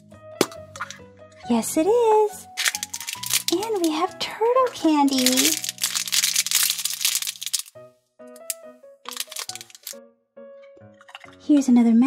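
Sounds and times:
plastic candy bag crinkling: 0:02.6 - 0:07.8, 0:08.4 - 0:10.0.

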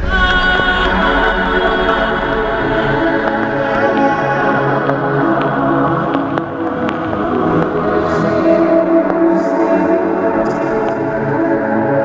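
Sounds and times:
instrumental music with chords: 0:00.0 - 0:12.0.

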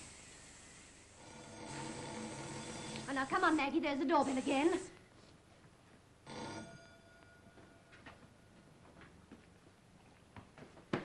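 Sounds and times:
electric doorbell ringing: 0:06.3 - 0:08.0.

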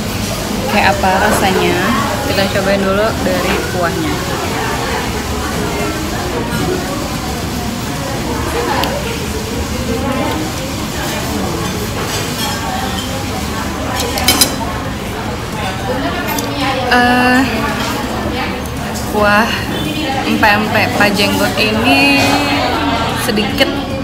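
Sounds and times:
diners chattering: 0:00.0 - 0:24.0
spoon and dish clinks: 0:14.0 - 0:14.6.

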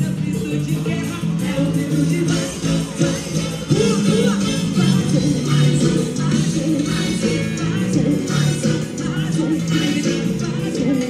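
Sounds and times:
loud live music with steady beat: 0:00.0 - 0:11.0.

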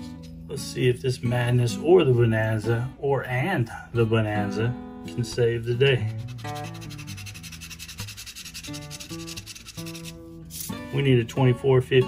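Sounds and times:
background music: 0:00.0 - 0:12.0
coin scraping lottery ticket: 0:06.1 - 0:10.7.

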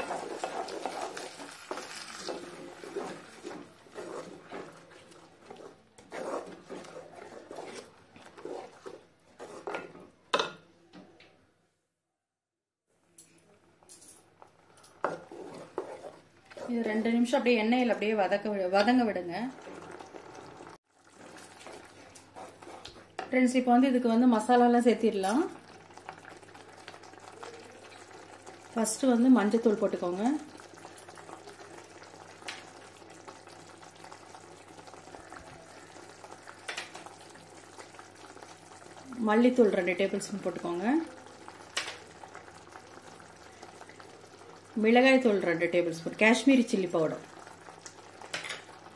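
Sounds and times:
spatula stirring thick sauce: 0:00.0 - 0:09.9, 0:14.9 - 0:18.2, 0:18.9 - 0:23.3, 0:25.6 - 0:28.8, 0:30.3 - 0:44.7
gravy simmering and bubbling: 0:00.0 - 0:10.3, 0:13.5 - 0:48.9.

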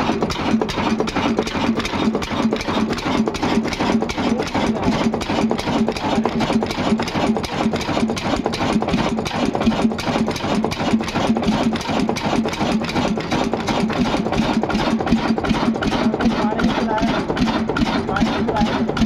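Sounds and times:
diesel engine idling: 0:00.0 - 0:19.0.

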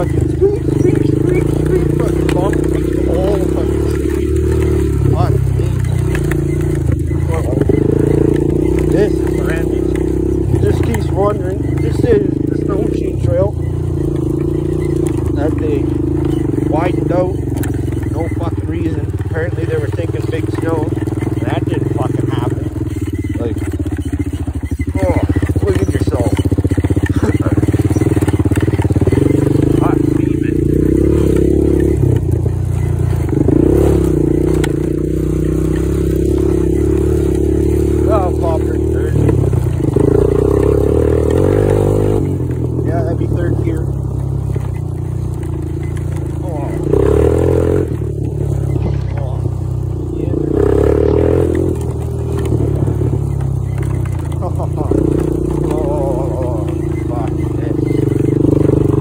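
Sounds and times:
quad engine revving while riding: 0:00.0 - 0:59.0.

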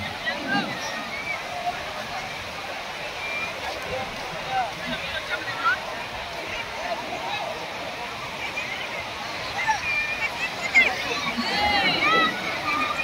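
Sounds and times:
crowd shouting and calling: 0:00.0 - 0:13.0.

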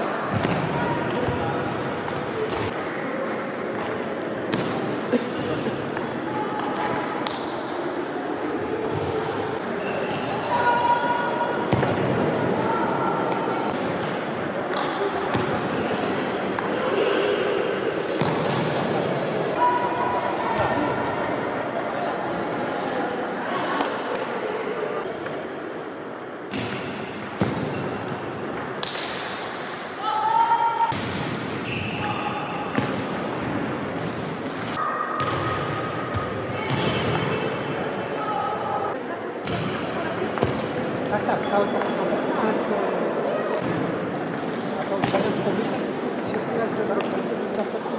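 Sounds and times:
babble of voices: 0:00.0 - 0:18.2
babble of voices in echoing hall: 0:00.0 - 0:47.9.

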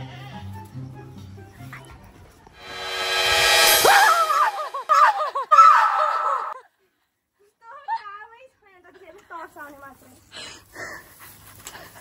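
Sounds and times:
person panting: 0:10.3 - 0:11.2.

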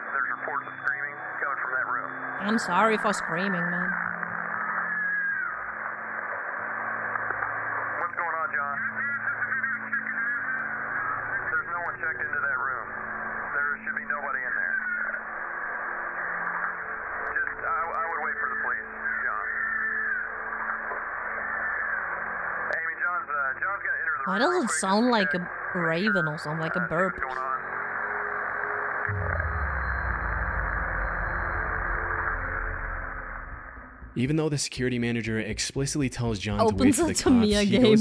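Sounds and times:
two-way radio voices: 0:22.7 - 0:27.5, 0:34.2 - 0:38.0.

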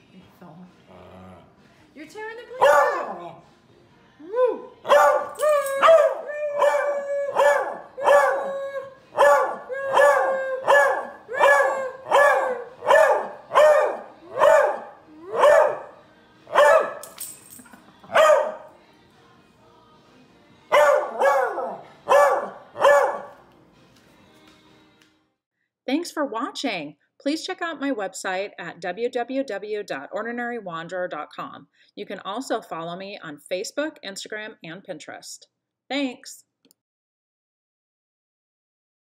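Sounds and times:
small dog barking: 0:02.6 - 0:03.2, 0:04.9 - 0:06.8, 0:07.4 - 0:08.4, 0:09.2 - 0:15.9, 0:16.6 - 0:17.0, 0:18.1 - 0:18.6, 0:20.7 - 0:23.3.

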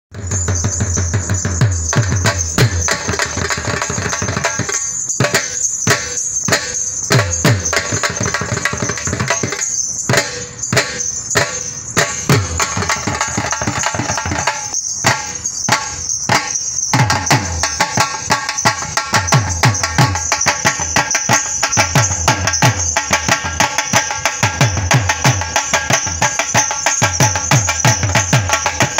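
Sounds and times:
dhol drums rhythm: 0:00.1 - 0:28.9.

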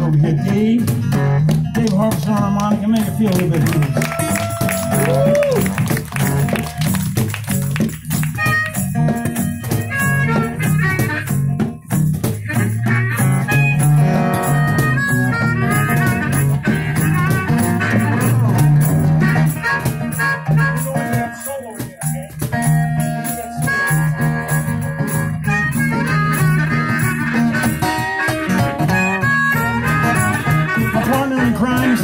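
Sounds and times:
strummed acoustic guitar: 0:00.0 - 0:32.0
harmonica solo: 0:08.2 - 0:32.0.

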